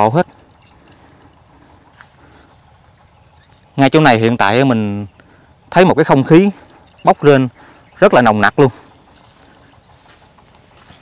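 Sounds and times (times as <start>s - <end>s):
faint low rumble: 0.0s - 11.0s
thin steady high whine: 0.0s - 11.0s.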